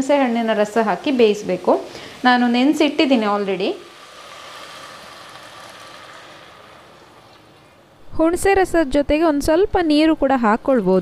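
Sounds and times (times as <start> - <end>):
okra sizzling in a pot: 0.0 - 8.0.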